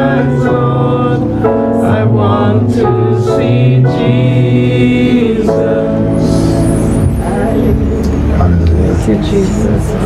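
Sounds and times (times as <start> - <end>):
soft background music: 0.0 - 10.0
steady low rumble: 4.4 - 10.0.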